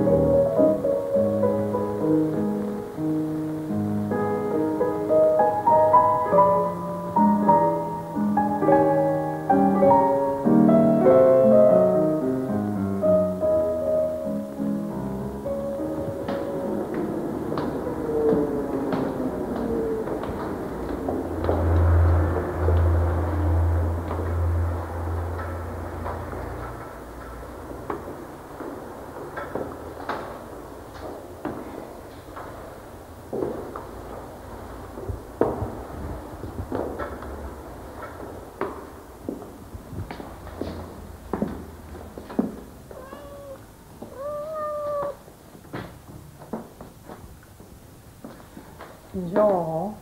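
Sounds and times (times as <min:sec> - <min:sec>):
heeled shoes on stone stairs: 0:38.6 - 0:43.0
cat meowing: 0:42.9 - 0:45.3.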